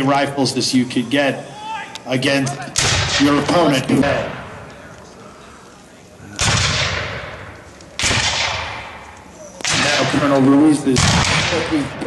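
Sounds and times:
rifle shots echoing: 0:02.8 - 0:04.7, 0:06.4 - 0:12.0.

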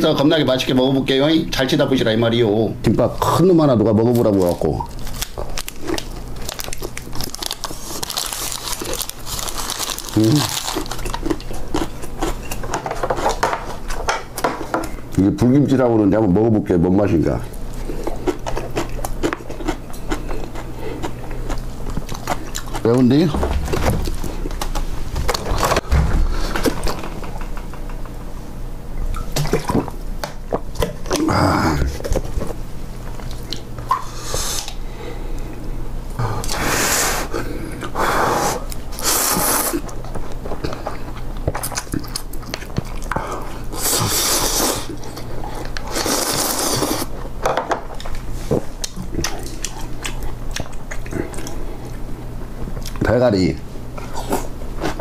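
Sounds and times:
paper wrapper crinkling: 0:04.3 - 0:11.3
chewing close to microphone: 0:04.5 - 0:14.0, 0:17.4 - 0:23.2, 0:38.7 - 0:47.2, 0:48.0 - 0:52.1
person humming mm: 0:31.2 - 0:32.0.

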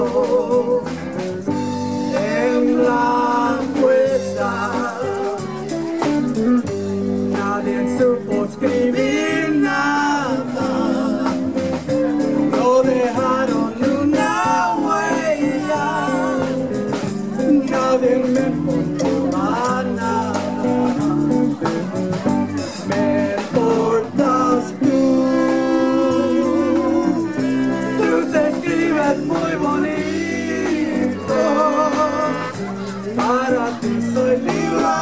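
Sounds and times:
person singing ballad: 0:00.0 - 0:35.0
plucked guitar: 0:00.0 - 0:35.0.

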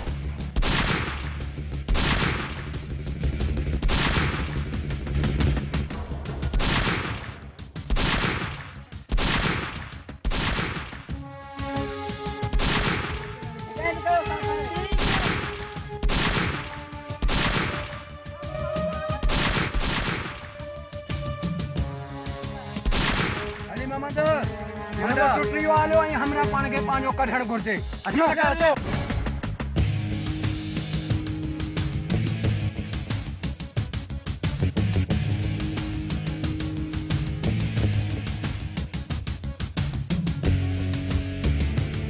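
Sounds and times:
background music: 0:00.0 - 0:42.0
rifle gunshots: 0:00.6 - 0:01.3, 0:01.9 - 0:02.7, 0:03.8 - 0:04.6, 0:06.5 - 0:11.0, 0:12.5 - 0:13.2, 0:15.0 - 0:18.1, 0:19.2 - 0:20.6, 0:22.8 - 0:23.7.

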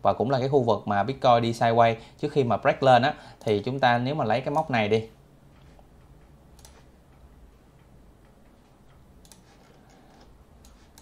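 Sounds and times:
low steady hum: 0:00.0 - 0:11.0
computer mouse clicks: 0:03.4 - 0:03.7, 0:05.6 - 0:11.0.

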